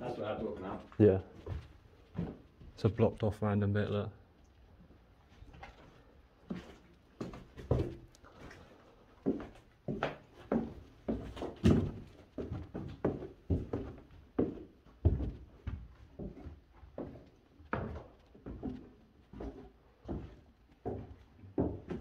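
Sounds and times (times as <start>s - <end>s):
heavy footsteps down stairs: 0.0s - 2.9s, 6.4s - 22.0s.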